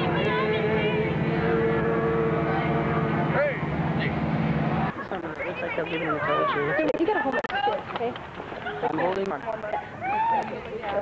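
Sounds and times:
bus engine humming: 0.0 - 7.6.

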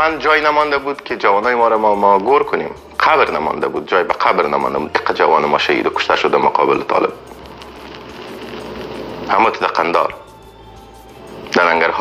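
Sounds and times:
hiss-like background noise: 0.9 - 12.0.

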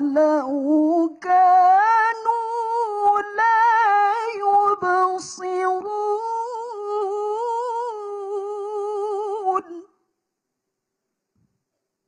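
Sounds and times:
woman reciting melodically: 0.0 - 10.0.

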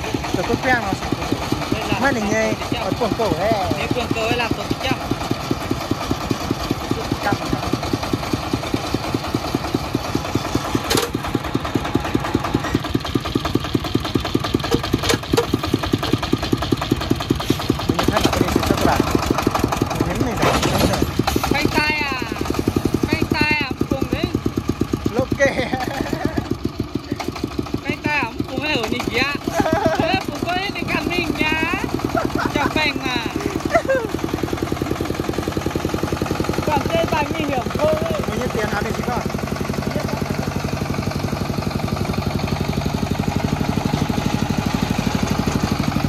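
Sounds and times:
single-cylinder diesel engine running: 0.0 - 46.0.

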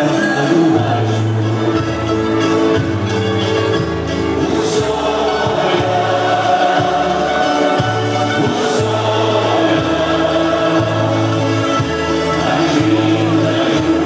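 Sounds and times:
group singing folk music: 0.0 - 14.0
bouncing bass line: 0.7 - 14.0.

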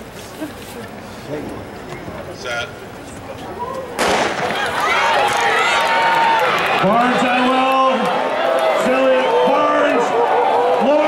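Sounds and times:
crowd cheering and screaming: 3.6 - 11.0
starting gun shot: 4.0 - 4.7.

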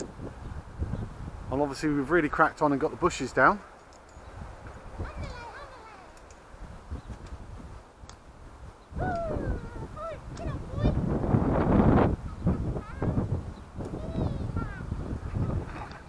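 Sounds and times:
wind gusting on microphone: 0.0 - 16.0.

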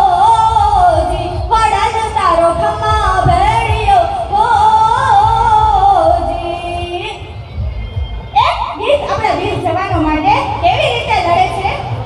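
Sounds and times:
girl singing through loudspeakers: 0.0 - 12.0.

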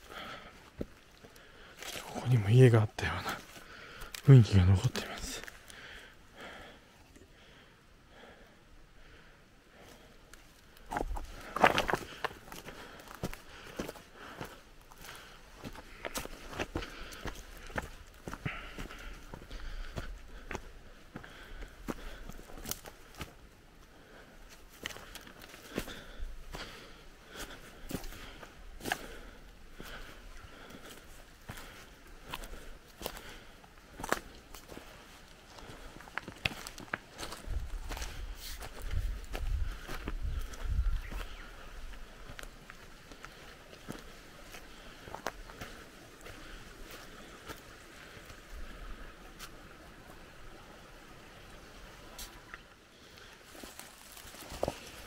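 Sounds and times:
faint steady hiss: 0.0 - 55.0
footsteps on leaf litter and twigs: 0.8 - 5.7, 10.7 - 23.4, 24.5 - 47.6, 53.2 - 55.0.

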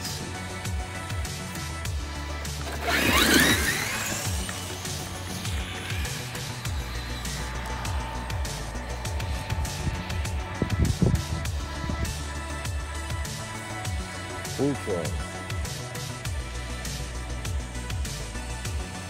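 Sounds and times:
background music: 0.0 - 19.0
electric motor whining: 0.4 - 14.6.

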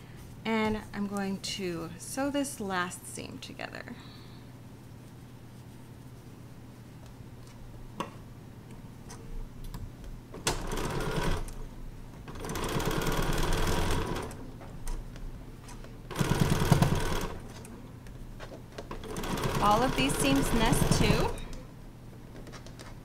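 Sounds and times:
sewing machine stitching: 12.3 - 14.4, 16.1 - 17.6, 18.9 - 21.5.

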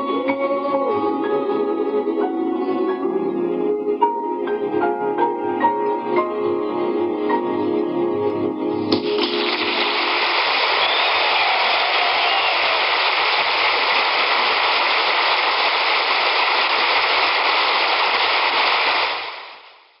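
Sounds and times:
audience applauding: 9.0 - 19.8.

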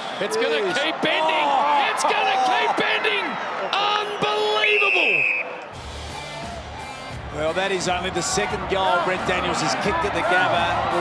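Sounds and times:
crowd: 0.0 - 11.0.

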